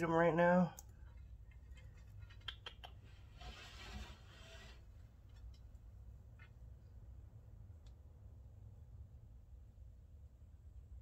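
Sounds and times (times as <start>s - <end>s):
glass door scraping along track: 3.2s - 5.2s.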